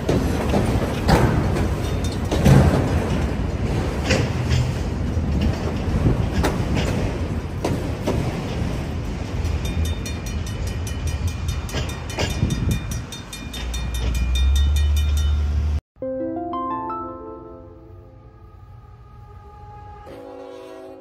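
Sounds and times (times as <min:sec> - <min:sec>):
train wheels clacking on rails: 0:00.0 - 0:15.8
crossing bell ringing: 0:09.4 - 0:18.4.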